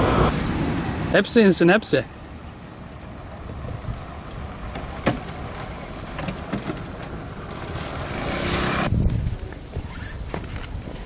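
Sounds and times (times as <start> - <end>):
vehicle passing close by: 0.0 - 1.4, 7.2 - 8.9.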